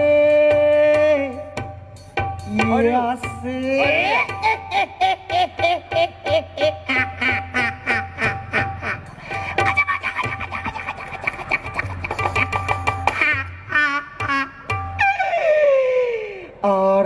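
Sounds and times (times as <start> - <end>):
person singing into a microphone: 0.0 - 1.6.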